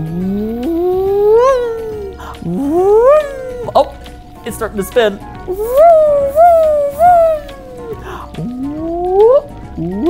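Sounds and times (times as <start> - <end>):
light background music: 0.0 - 10.0
person making whooping sound effects: 0.1 - 4.0, 5.5 - 10.0.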